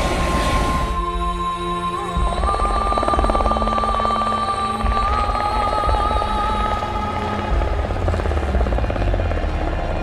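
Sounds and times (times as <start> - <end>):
helicopter rotor rumble: 0.0 - 10.0.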